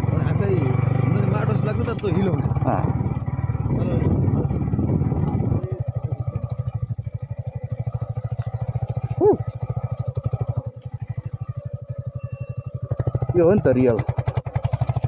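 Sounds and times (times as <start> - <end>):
motorcycle engine at low revs: 0.0 - 15.0.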